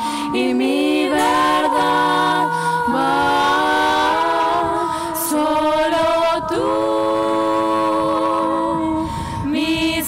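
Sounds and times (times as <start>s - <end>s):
female vocal trio singing harmony: 0.0s - 10.0s.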